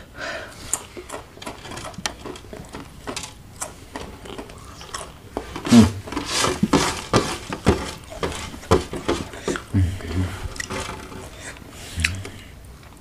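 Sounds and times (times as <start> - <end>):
chewing crisp snack crunches: 3.5 - 5.3
closed-mouth humming: 3.5 - 13.0.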